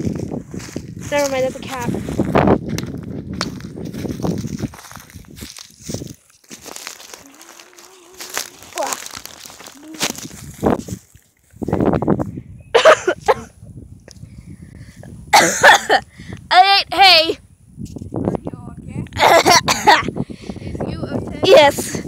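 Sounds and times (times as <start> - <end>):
dry hay rustling and crunching: 0.0 - 2.3, 3.5 - 11.7
footsteps: 0.0 - 11.6.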